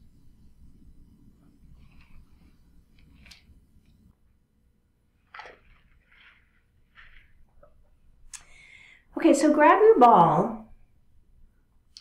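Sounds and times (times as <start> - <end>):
soft breathing: 8.4 - 9.1.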